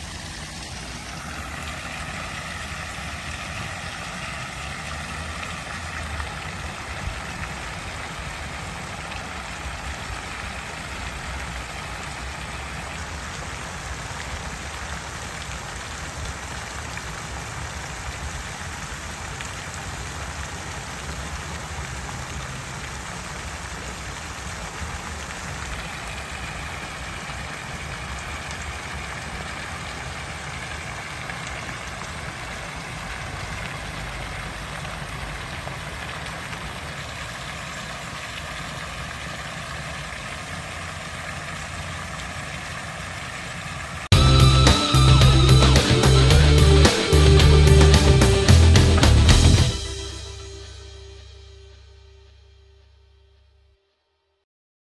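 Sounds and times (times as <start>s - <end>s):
fountain water splashing: 0.0s - 51.9s.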